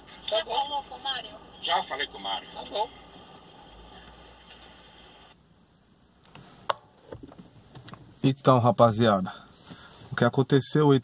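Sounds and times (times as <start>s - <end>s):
recording background hiss: 0.0s - 11.0s.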